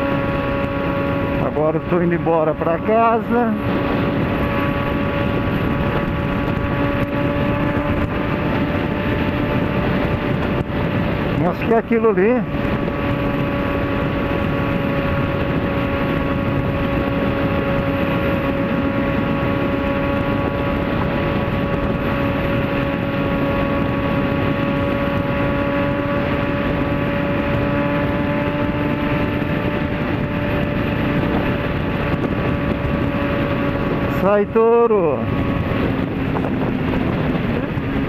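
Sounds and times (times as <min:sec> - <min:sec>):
motorcycle engine cruising: 0:00.0 - 0:38.0
road noise: 0:00.0 - 0:38.0
wind noise: 0:00.0 - 0:38.0.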